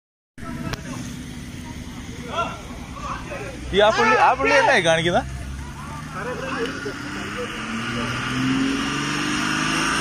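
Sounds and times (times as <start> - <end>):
street noise low rumble: 0.4 - 10.0.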